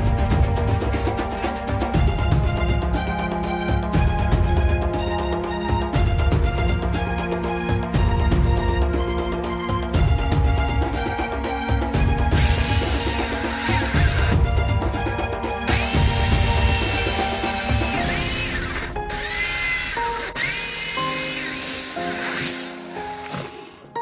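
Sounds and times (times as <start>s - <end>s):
background music: 0.0s - 24.0s
electric drill boring: 12.3s - 14.4s, 15.4s - 23.8s.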